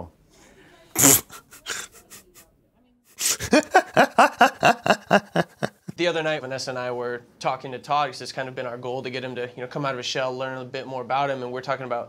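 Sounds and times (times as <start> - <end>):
man's breathy laugh: 1.0 - 2.4, 3.2 - 6.0.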